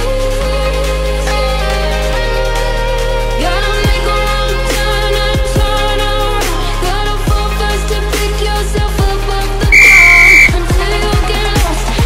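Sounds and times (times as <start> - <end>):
electronic dance music: 9.7 - 10.5
whistle-like signal tone: 9.7 - 10.6.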